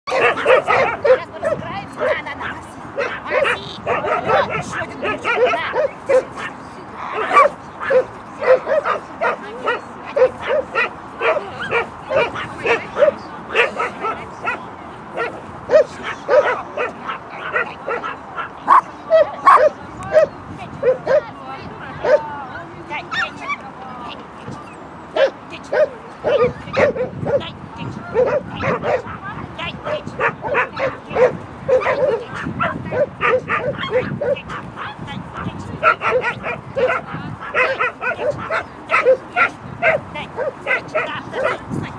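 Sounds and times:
dog barking excitedly: 0.1s - 14.6s, 15.2s - 21.3s, 21.9s - 22.2s, 23.1s - 23.6s, 25.2s - 41.7s.

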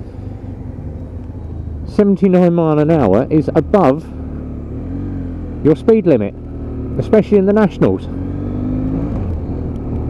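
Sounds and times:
motorcycle engine humming: 0.0s - 10.0s
wind and road noise: 0.0s - 10.0s.

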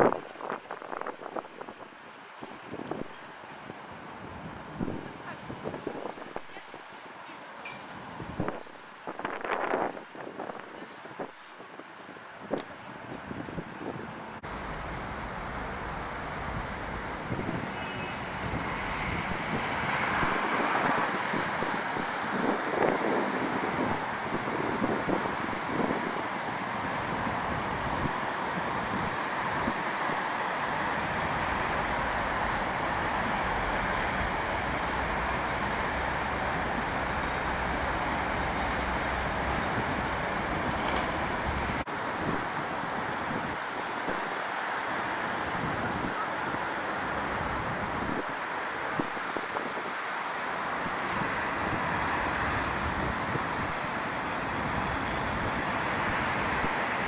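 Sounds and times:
busy road traffic: 0.0s - 57.0s.

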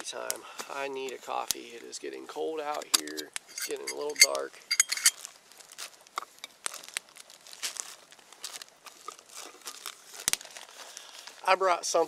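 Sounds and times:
plastic packaging crinkling: 2.6s - 11.7s.

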